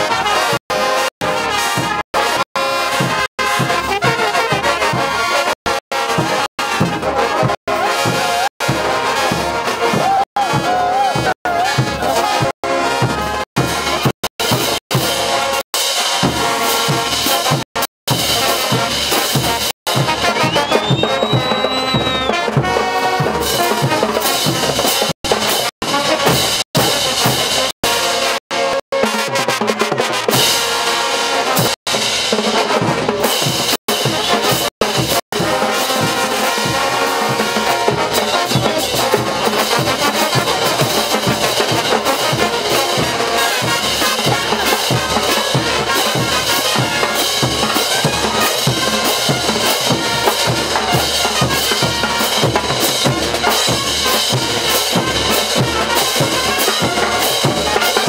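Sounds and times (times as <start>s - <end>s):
bass drums and hand cymbals: 0.0s - 28.8s, 30.3s - 58.0s
brass band playing: 0.0s - 58.0s.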